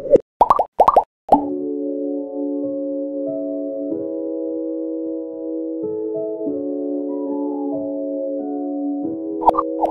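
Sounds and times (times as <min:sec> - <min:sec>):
bubbly upward blips: 0:00.0 - 0:01.5.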